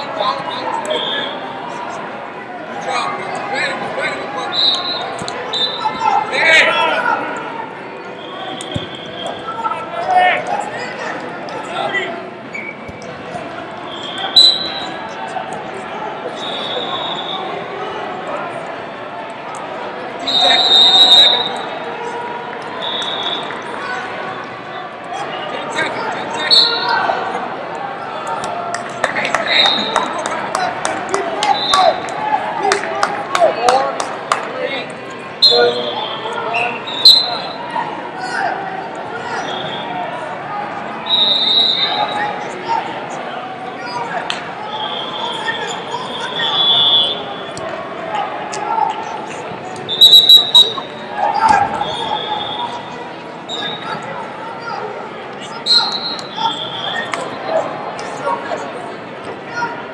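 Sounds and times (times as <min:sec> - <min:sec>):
hubbub of voices: 0:00.0 - 0:59.9
referee whistle blasts: 0:04.4 - 0:06.0, 0:08.2 - 0:09.5, 0:13.9 - 0:15.0, 0:16.4 - 0:17.5, 0:20.2 - 0:21.7, 0:22.8 - 0:23.6, 0:26.3 - 0:26.9, 0:35.4 - 0:37.6, 0:39.4 - 0:39.9, 0:41.0 - 0:42.2, 0:44.7 - 0:47.5, 0:49.9 - 0:52.9, 0:55.6 - 0:57.4.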